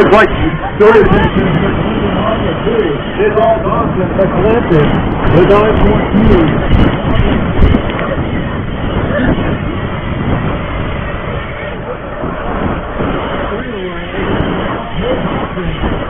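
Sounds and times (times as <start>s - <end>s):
wind on microphone: 0.0s - 16.0s.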